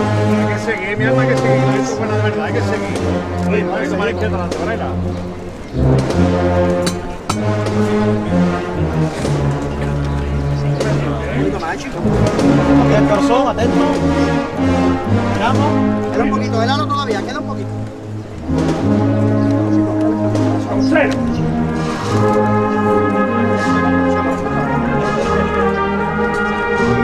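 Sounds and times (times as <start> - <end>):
brass band playing a march: 0.0 - 27.0
sharp percussive strikes: 5.8 - 8.0.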